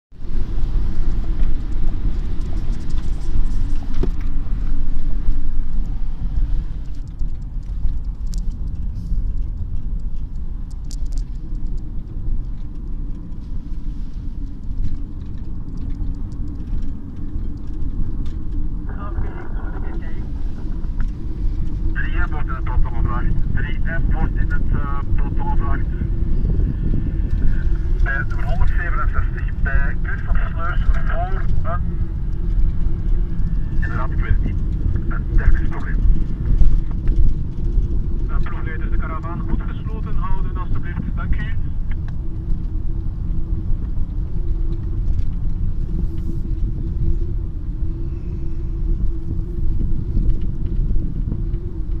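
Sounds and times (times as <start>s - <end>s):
car engine and road noise: 0.1s - 52.0s
faint steady hum: 0.2s - 52.0s
person talking: 18.9s - 20.4s, 28.0s - 31.8s.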